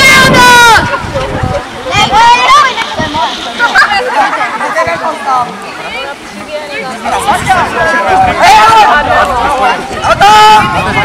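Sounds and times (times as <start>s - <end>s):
young people chattering and calling out: 0.0s - 11.0s.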